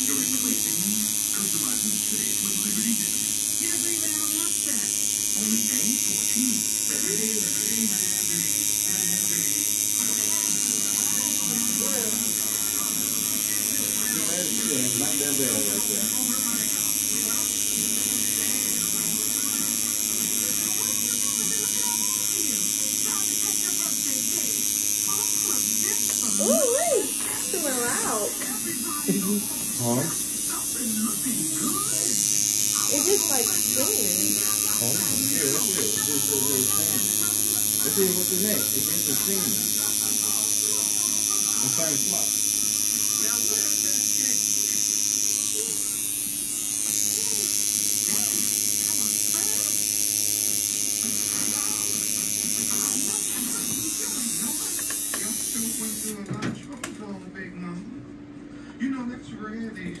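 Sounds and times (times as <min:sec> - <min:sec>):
tattoo machine buzzing: 0:00.0 - 0:56.3.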